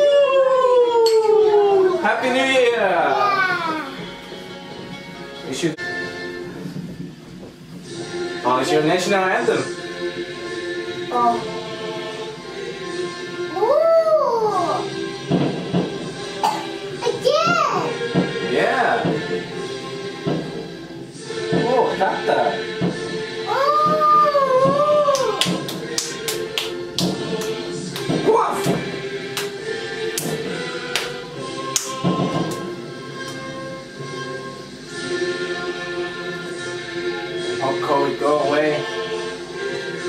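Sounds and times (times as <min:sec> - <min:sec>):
anthem playing from television: 0:00.0 - 0:40.0
rising and falling wail: 0:23.4 - 0:25.5.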